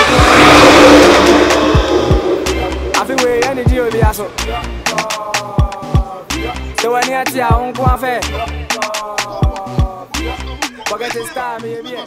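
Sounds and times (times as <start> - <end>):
dump truck driving past: 0.0 - 4.9.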